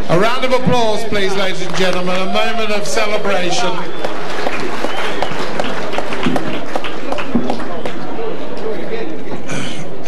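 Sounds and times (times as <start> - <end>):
audience applauding: 1.1 - 8.7.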